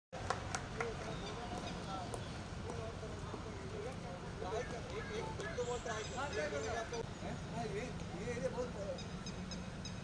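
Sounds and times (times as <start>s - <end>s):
distant voices talking: 0.2s - 10.0s
outdoor background hiss: 0.2s - 10.0s.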